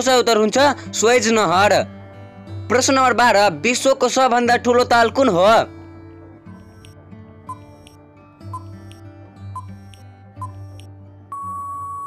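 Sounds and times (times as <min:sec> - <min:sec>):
background music: 0:00.0 - 0:12.0
timer ticks: 0:09.6 - 0:10.9.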